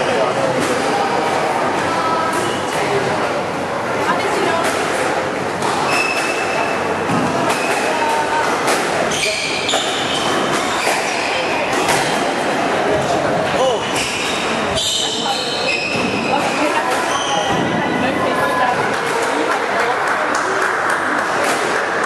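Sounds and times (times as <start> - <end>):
chatter of a busy hall: 0.0 - 22.0
sneakers squeaking: 5.6 - 12.5, 13.6 - 18.9
squash ball knocking: 15.9 - 18.0.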